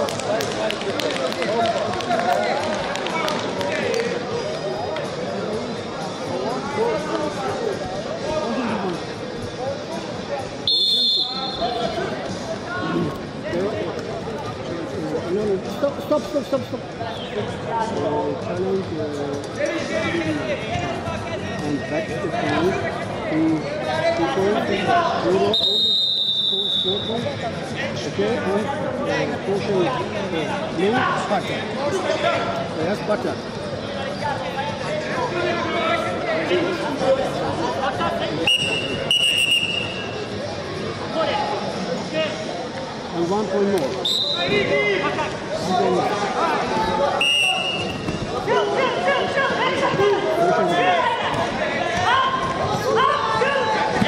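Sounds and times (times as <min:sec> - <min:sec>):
crowd chatter: 0:00.0 - 0:54.0
voices in an arena hall: 0:00.0 - 0:54.0
referee's whistle blast: 0:10.7 - 0:11.8, 0:25.5 - 0:27.1, 0:38.4 - 0:40.1, 0:44.0 - 0:44.6, 0:47.2 - 0:48.0.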